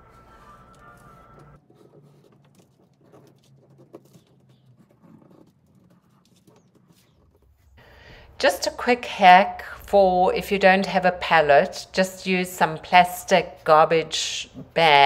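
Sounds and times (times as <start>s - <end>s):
pencil scratching on paper: 0.2s - 7.7s.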